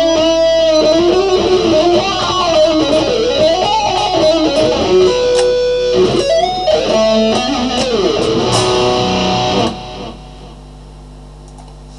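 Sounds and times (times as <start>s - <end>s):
electric guitar lead with bends: 0.0s - 10.6s.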